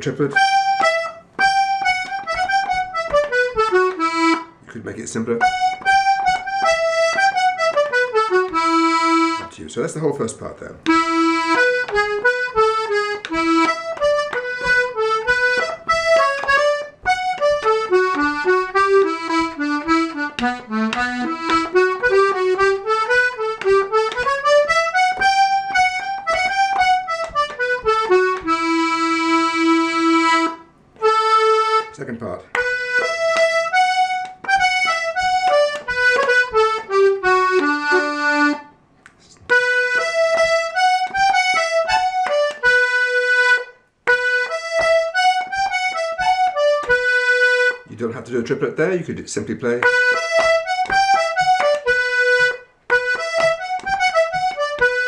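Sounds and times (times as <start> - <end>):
button accordion playing reel: 0.0 - 4.6, 5.2 - 9.6, 10.8 - 38.7, 39.5 - 48.2, 49.7 - 55.0.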